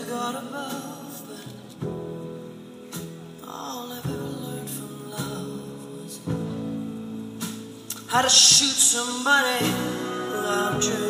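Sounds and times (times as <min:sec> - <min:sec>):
live band playing: 0:00.0 - 0:11.0.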